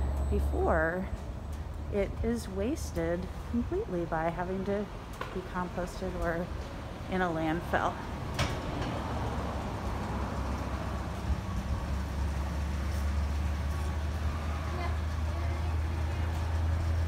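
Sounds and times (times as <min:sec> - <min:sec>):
vehicle engine rumbling: 0:00.0 - 0:17.0.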